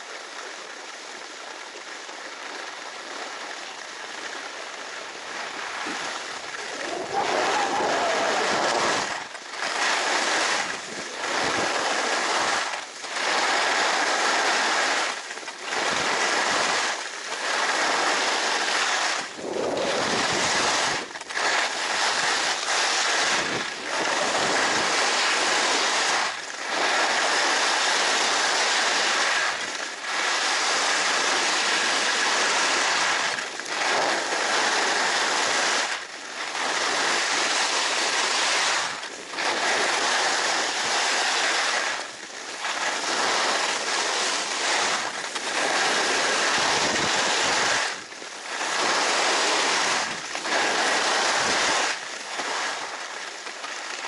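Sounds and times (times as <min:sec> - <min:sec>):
skis carving on snow: 0:00.7 - 0:54.0
wind on microphone: 0:05.3 - 0:15.1, 0:15.7 - 0:29.6, 0:36.6 - 0:53.0.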